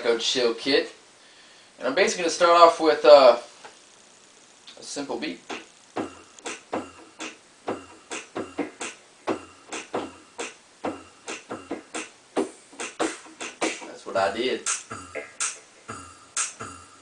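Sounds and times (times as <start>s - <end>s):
synthesizer drum beat: 5.5s - 17.0s.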